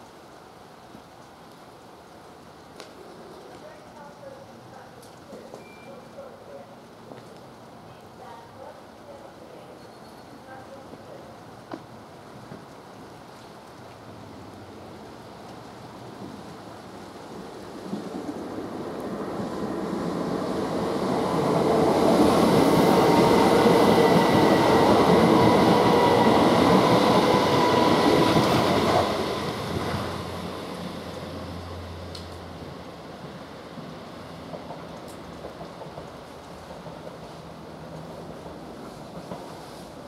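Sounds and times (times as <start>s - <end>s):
train rumbling and whining: 14.3s - 40.0s.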